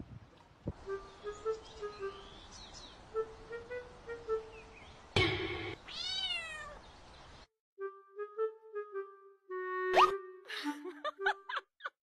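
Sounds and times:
light plucked music: 0.7s - 5.4s, 7.8s - 11.6s.

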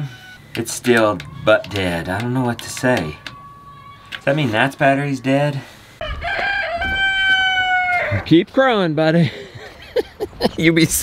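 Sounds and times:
rooster crowing: 2.5s - 5.0s, 6.0s - 8.3s.

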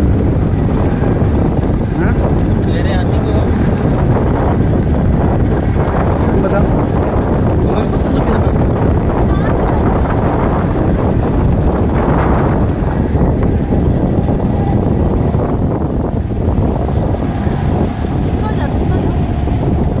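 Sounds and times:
wind buffeting microphone: 0.0s - 20.0s
faint voices: 6.1s - 11.1s, 17.0s - 19.5s.

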